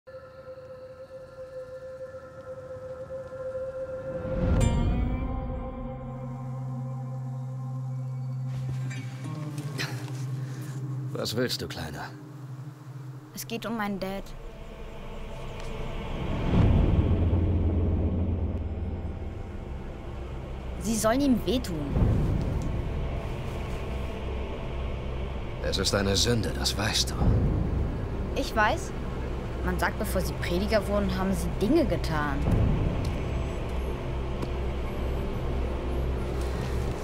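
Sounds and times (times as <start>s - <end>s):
sustained steady tone: 0.1s - 8.7s, 9.4s - 37.0s
low rumble: 14.0s - 37.0s.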